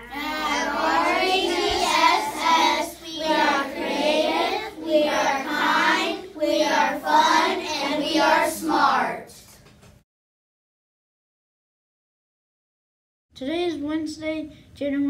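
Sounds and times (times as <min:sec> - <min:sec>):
children chanting in unison: 0:00.0 - 0:09.4.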